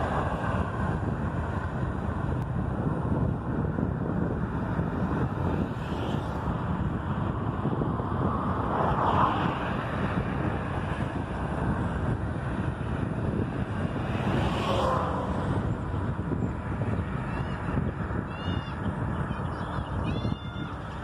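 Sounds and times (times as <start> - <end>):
car passing: 0.0 - 20.0
passing traffic: 0.0 - 21.0
wind buffeting microphone: 0.0 - 21.0.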